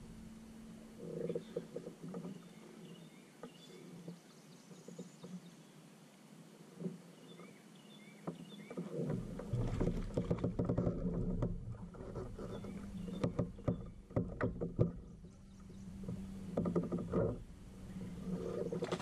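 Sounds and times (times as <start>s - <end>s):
steady low hum: 0.0s - 19.0s
clicks and knocks from fishing gear: 8.3s - 15.4s, 18.5s - 19.0s.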